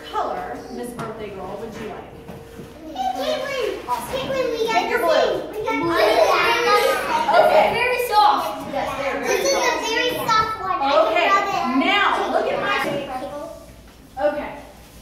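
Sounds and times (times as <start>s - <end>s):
young children chattering: 2.7s - 13.8s.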